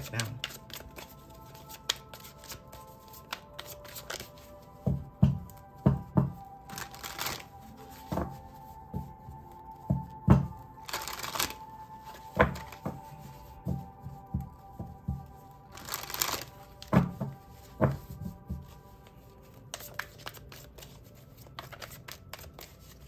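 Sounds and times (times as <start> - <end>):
cards being shuffled: 0.0 - 5.6, 6.2 - 9.1, 10.4 - 13.5, 15.7 - 23.0
quiet background music: 0.0 - 23.0.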